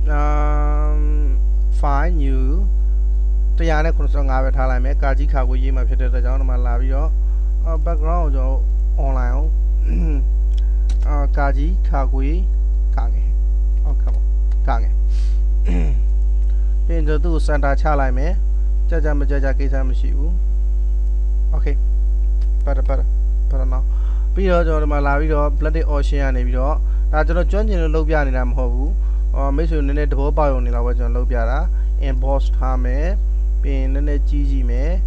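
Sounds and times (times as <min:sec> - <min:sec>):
person talking: 0:00.0 - 0:02.7, 0:03.6 - 0:20.4, 0:21.5 - 0:21.8, 0:22.4 - 0:35.0
low electrical mains hum: 0:00.0 - 0:35.0.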